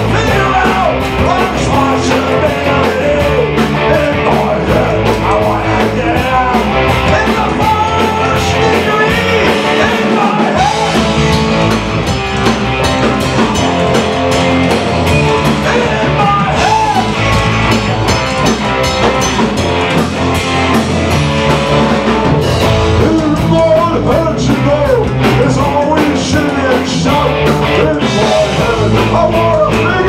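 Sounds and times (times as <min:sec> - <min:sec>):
drum kit beat: 0:00.0 - 0:30.0
electric guitars: 0:00.0 - 0:30.0.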